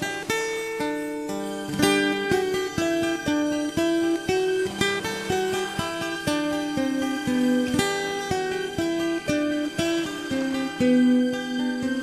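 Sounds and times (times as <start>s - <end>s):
plucked string melody: 0.0s - 12.0s.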